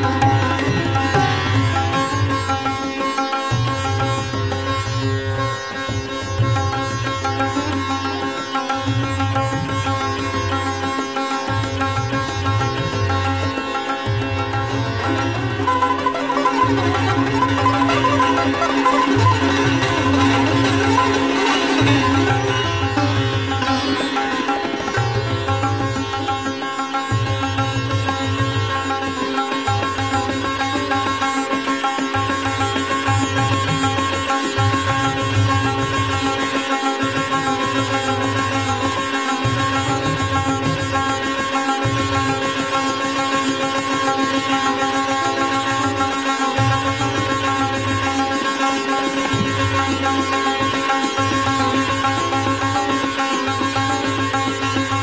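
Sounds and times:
sitar playing: 0.0s - 55.0s.

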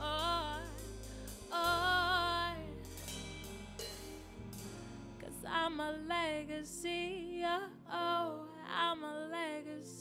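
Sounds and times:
woman singing: 0.0s - 3.0s, 5.2s - 10.0s
cymbal and hi-hat strokes: 0.0s - 5.4s
low bass notes: 0.0s - 7.4s.

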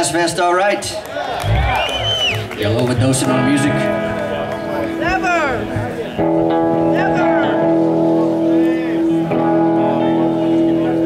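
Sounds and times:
faint voices: 0.8s - 11.0s.

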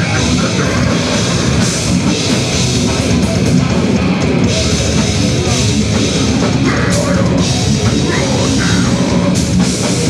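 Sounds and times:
death metal band playing: 0.0s - 10.0s.

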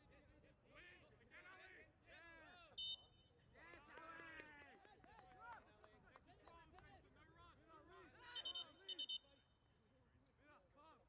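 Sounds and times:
faint shouts of players and spectators: 0.0s - 11.0s.

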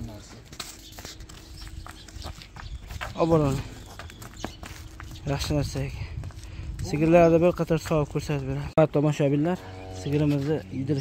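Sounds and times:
hooves knocking on asphalt: 0.0s - 8.6s.

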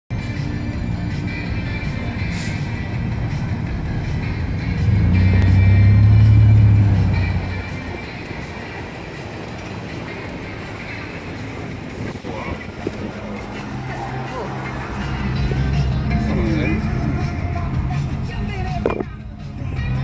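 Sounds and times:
music: 0.1s - 20.0s
vehicle rumble passing: 0.2s - 20.0s.

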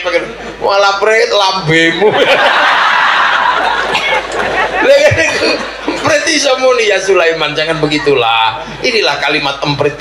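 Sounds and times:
audience laughing: 2.0s - 6.4s.

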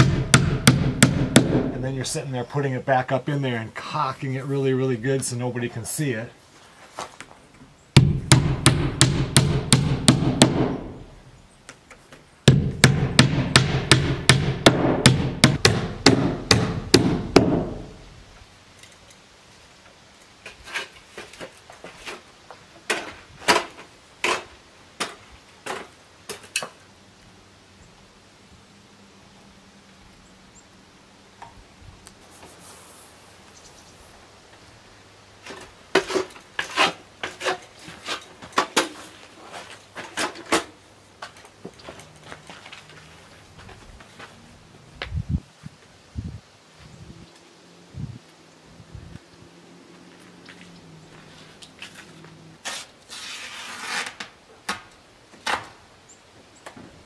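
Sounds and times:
hammer tapping nails: 12.5s - 17.8s.

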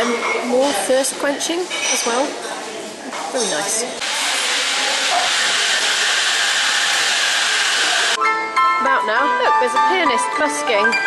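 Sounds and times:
steam wand hissing: 4.0s - 8.2s.

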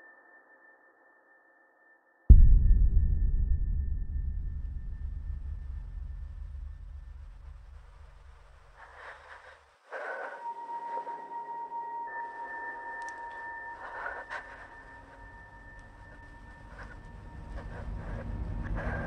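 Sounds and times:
low rumble: 2.3s - 8.8s, 15.0s - 19.0s
faint clicks: 13.0s - 14.7s.

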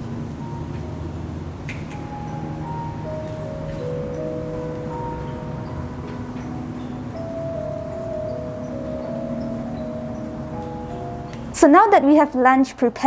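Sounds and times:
slow melody of held notes: 0.0s - 12.4s
low steady hiss: 0.0s - 13.0s.

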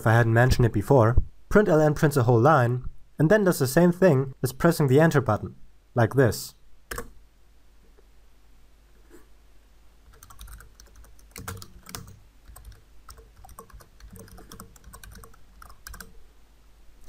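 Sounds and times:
low steady hum: 0.0s - 17.0s
keyboard typing: 6.9s - 7.1s, 10.1s - 16.2s.

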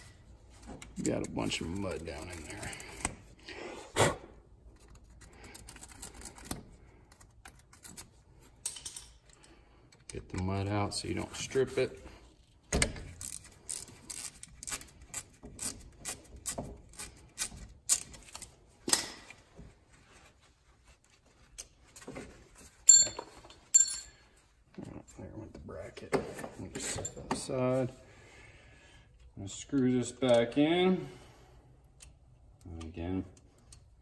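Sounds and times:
ringing metallic clinks: 22.9s - 24.2s.

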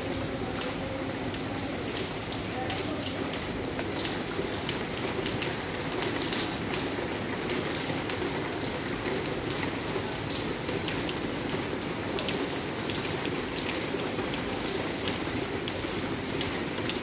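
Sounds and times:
water dripping and splashing: 0.0s - 17.0s.

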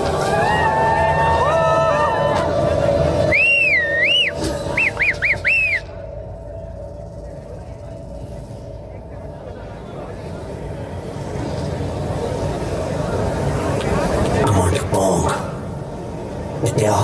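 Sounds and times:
background music: 0.0s - 17.0s
high whistling tone gliding: 0.2s - 10.1s.

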